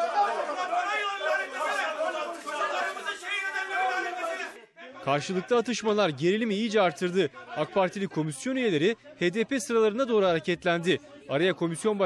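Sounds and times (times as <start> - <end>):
people arguing: 0.0 - 11.6.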